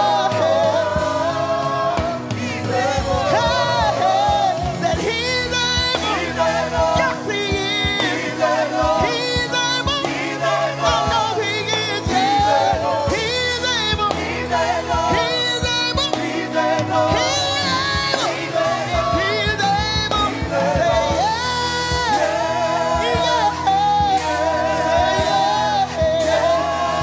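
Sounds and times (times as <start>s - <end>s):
backing singers: 0.0s - 27.0s
instrumental backing: 0.0s - 27.0s
woman singing lead vocals: 0.0s - 27.0s.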